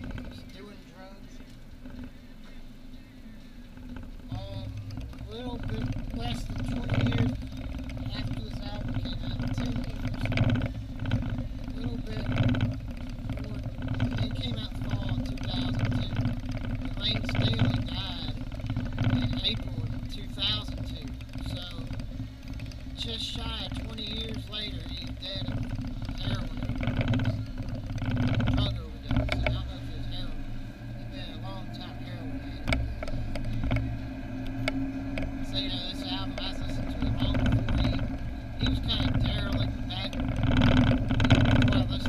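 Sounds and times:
car engine idling: 0.0 - 42.0
person talking: 31.0 - 32.7, 35.4 - 40.2, 41.5 - 42.0.

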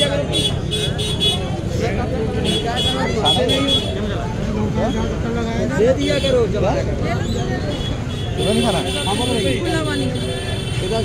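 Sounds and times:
low rumble of traffic: 0.0 - 11.0
street voices talking: 0.0 - 11.0.

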